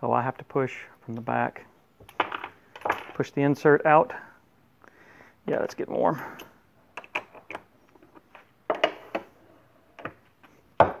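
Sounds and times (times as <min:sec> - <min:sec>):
metal mold clicking and knocking: 0:07.0 - 0:09.3.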